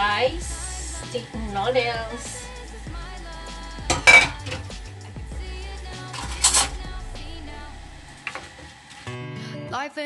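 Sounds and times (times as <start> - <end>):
pop song in background: 0.0 - 10.0
kitchenware clatter: 3.9 - 4.7.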